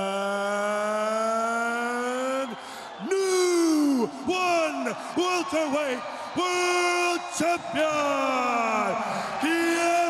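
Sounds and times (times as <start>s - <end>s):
man announcing drawn-out calls: 1.8s - 10.0s.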